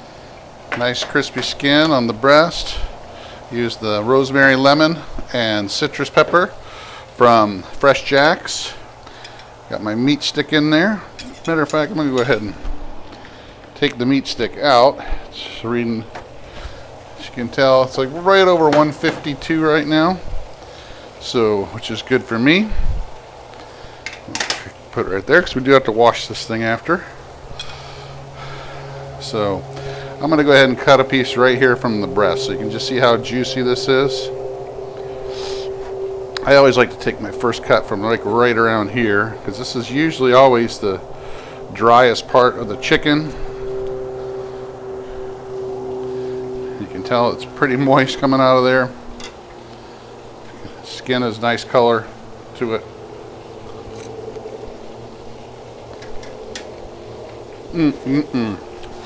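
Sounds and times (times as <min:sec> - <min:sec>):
low steady hum: 0:00.0 - 0:59.0.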